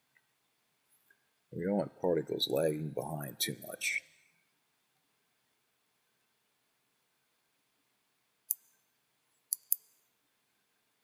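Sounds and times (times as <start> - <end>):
computer mouse clicks: 9.5 - 10.0.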